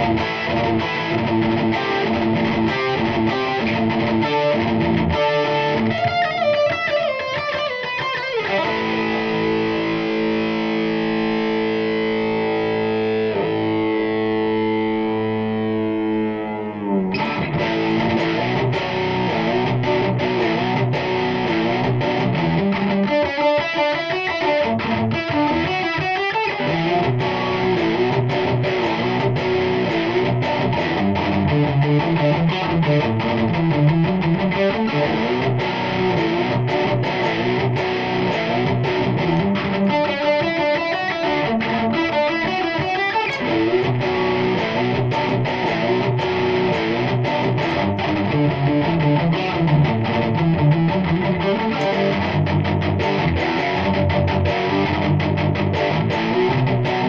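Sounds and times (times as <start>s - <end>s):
distorted electric guitar: 0.0s - 57.0s.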